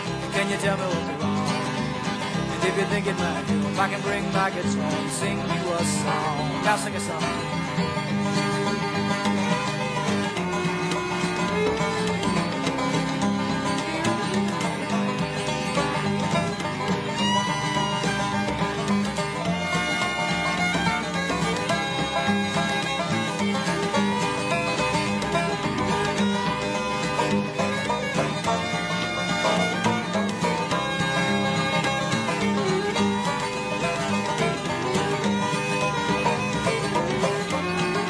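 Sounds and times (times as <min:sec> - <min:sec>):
acoustic guitar: 0:00.0 - 0:38.0
banjo: 0:00.0 - 0:38.0
bass: 0:00.0 - 0:38.0
fiddle: 0:00.0 - 0:38.0.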